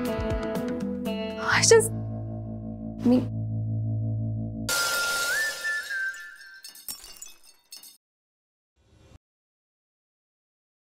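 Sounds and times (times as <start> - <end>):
high ringing tone: 4.7 - 7.1
glassy shattering burst: 4.7 - 8.0.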